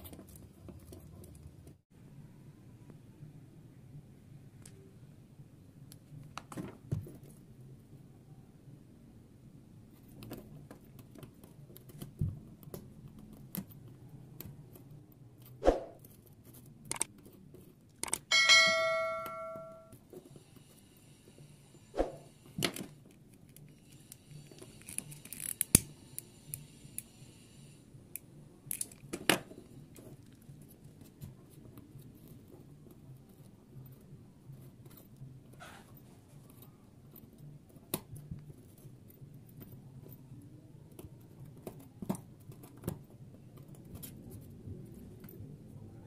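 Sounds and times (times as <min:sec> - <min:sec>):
bell-like ding: 0:18.3 - 0:19.9.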